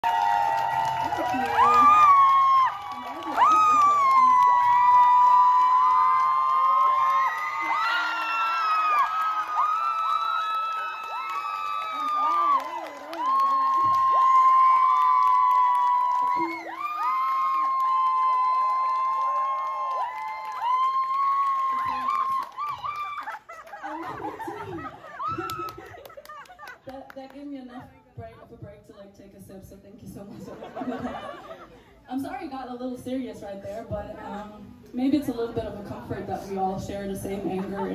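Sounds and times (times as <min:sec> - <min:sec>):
crowd cheering and screaming: 0:00.0 - 0:26.1.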